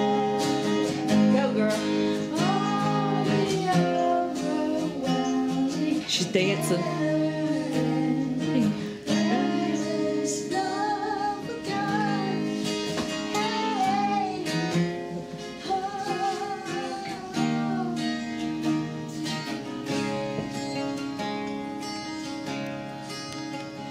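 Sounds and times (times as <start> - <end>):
girl singing: 0.0 - 20.5, 21.7 - 22.6
acoustic guitar strummed: 0.0 - 23.9.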